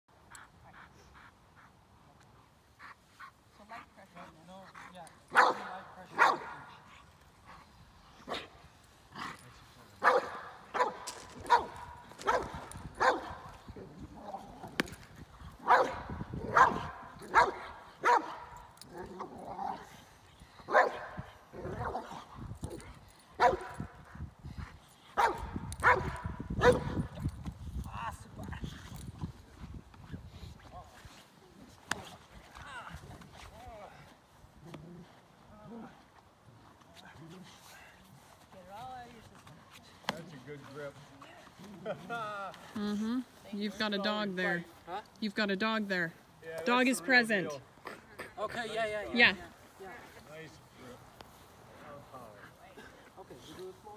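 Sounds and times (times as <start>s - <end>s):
dog barking: 5.3s - 6.7s, 10.0s - 13.5s, 15.6s - 18.6s, 20.7s - 22.1s, 23.4s - 23.8s, 25.2s - 27.0s.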